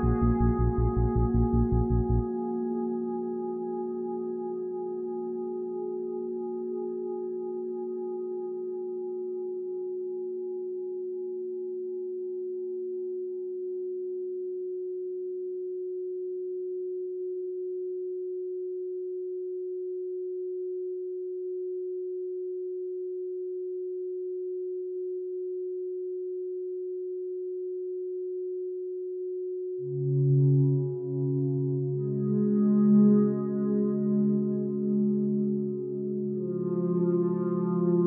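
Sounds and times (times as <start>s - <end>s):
steady electronic sine tone: 0.0s - 38.0s.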